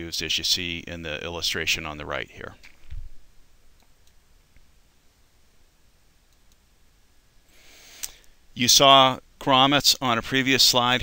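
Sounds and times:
faint short clicks: 8.0s - 8.3s.

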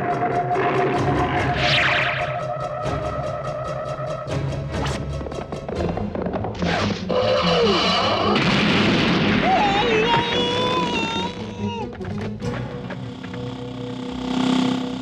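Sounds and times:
loud crashing burst: 8.4s - 9.7s.

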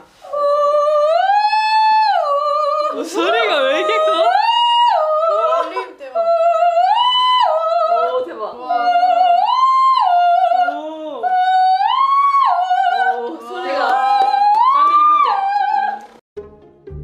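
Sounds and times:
woman singing vocal warm-up: 0.0s - 16.2s.

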